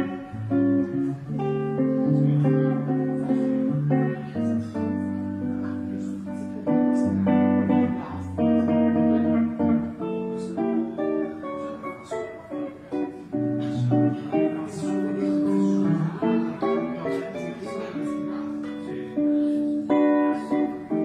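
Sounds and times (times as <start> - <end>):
jazz electric guitar: 0.0 - 21.0.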